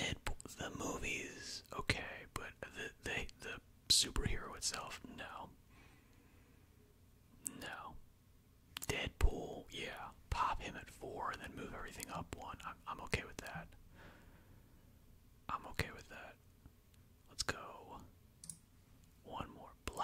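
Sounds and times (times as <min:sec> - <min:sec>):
man whispering: 0:00.0 - 0:05.6, 0:07.4 - 0:08.0, 0:08.8 - 0:13.8, 0:15.4 - 0:16.5, 0:17.2 - 0:18.1, 0:19.2 - 0:20.0
sharp clicks: 0:18.4 - 0:18.6.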